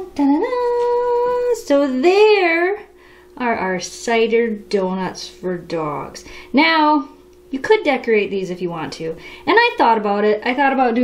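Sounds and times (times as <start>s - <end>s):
woman singing: 0.0s - 2.8s.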